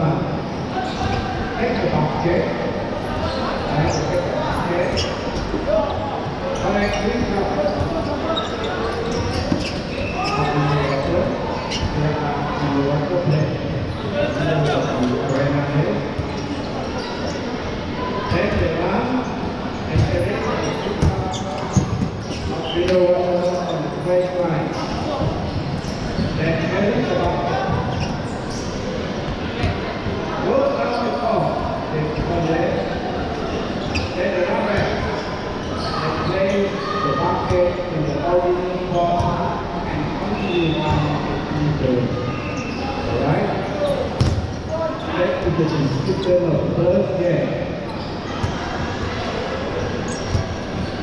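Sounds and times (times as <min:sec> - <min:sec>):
balls thudding on hard court: 0:21.0 - 0:22.2, 0:44.2 - 0:44.6.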